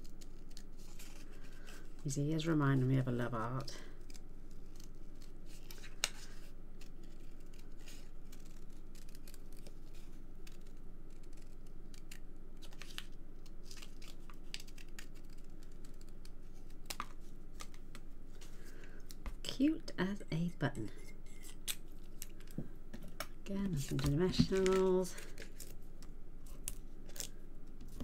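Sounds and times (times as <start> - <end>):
soft paper rustling: 0.0 - 19.6, 23.5 - 28.0
low steady hum: 0.0 - 28.0
scissors snipping: 6.8 - 9.7, 10.4 - 13.1.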